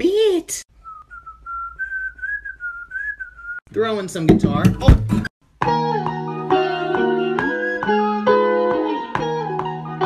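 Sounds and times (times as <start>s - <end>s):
person whistling a slow tune: 0.8s - 3.6s, 7.1s - 8.2s.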